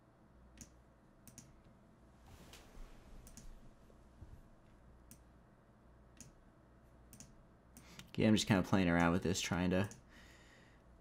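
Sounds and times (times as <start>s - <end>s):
computer mouse clicks: 0.5s - 1.7s, 3.2s - 3.5s, 5.1s - 5.3s, 6.1s - 6.4s, 7.1s - 8.1s.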